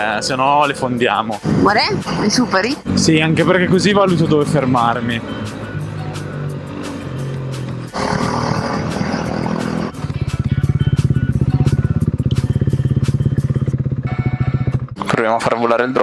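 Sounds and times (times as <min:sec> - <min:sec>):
motorcycle engine idling: 0:02.8 - 0:15.0.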